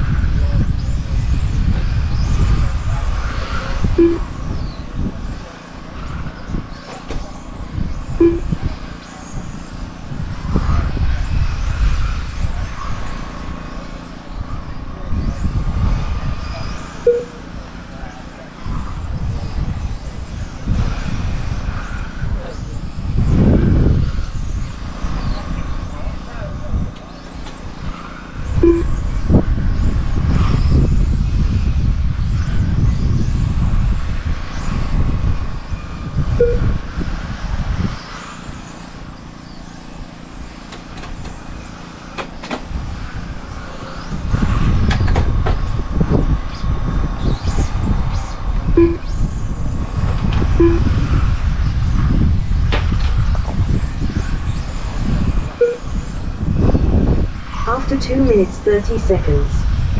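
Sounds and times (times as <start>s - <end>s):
gusty low rumble: 0.0s - 17.8s, 27.6s - 39.2s, 42.6s - 59.9s
rc car motor whines: 0.0s - 57.8s
short beeps: 4.0s - 4.3s, 8.2s - 8.6s, 17.1s - 17.4s, 28.6s - 29.0s, 36.4s - 36.7s, 48.8s - 49.1s, 50.6s - 51.0s, 55.6s - 55.9s.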